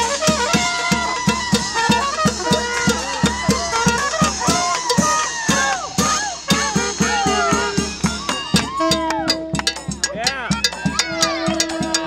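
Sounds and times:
wind instrument holding a long note: 0.0s - 9.6s
brass and reed street band: 0.0s - 12.0s
crowd voices: 0.0s - 12.0s
cowbell struck with a stick: 7.0s - 12.0s.

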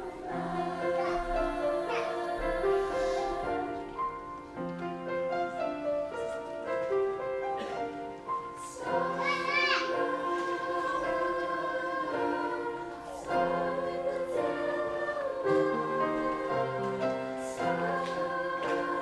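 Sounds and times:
children's choir singing: 0.0s - 19.0s
piano accompaniment: 0.0s - 19.0s.

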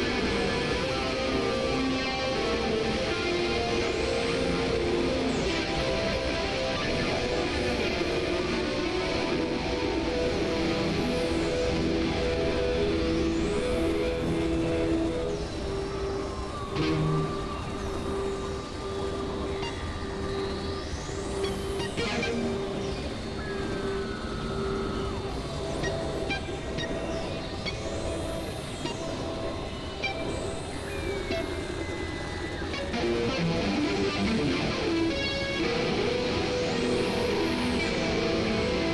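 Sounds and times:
synthesizer drone: 0.0s - 38.9s.

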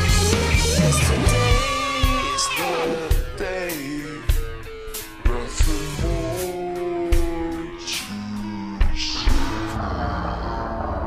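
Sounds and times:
slowed down rock song: 0.0s - 11.0s.

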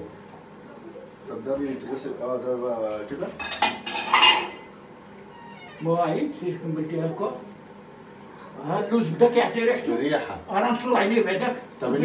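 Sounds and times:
crockery and cutlery clinking: 3.4s - 4.7s.

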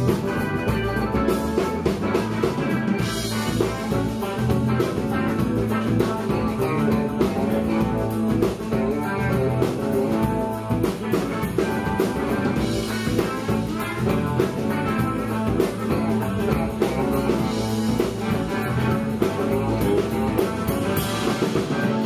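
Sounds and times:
drum kit: 0.0s - 22.0s
electric guitar: 0.0s - 22.0s.

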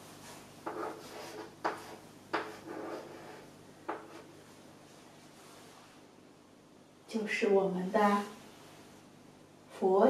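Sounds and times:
chalk taps: 0.6s - 4.3s
chalk scratching on blackboard: 0.6s - 4.4s.

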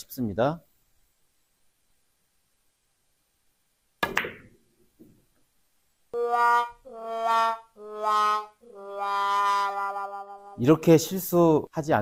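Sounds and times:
cue striking billiard ball: 4.0s - 4.5s.

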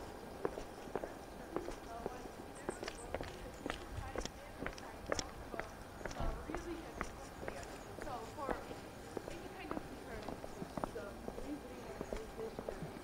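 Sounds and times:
footsteps on concrete steps: 0.0s - 13.0s.

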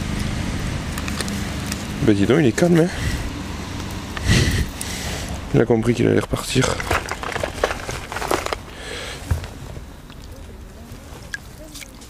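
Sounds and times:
wet landing net rustling: 6.6s - 12.0s.

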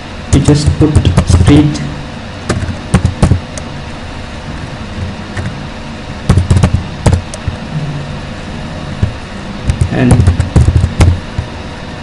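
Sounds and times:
background hum and hiss: 0.0s - 12.0s
keyboard keystrokes: 6.3s - 7.5s.

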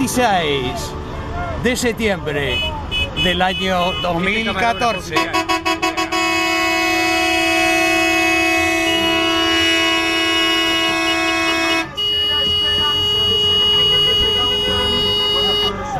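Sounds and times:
vehicle horns blasting: 2.3s - 15.9s.

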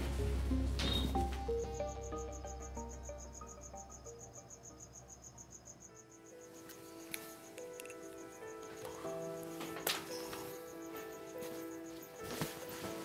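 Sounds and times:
soft background music: 0.0s - 13.0s
crickets chirping: 0.2s - 13.0s.

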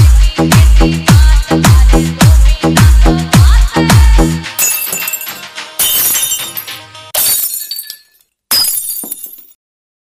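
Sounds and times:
breaking glass crash effects: 4.6s - 9.5s.

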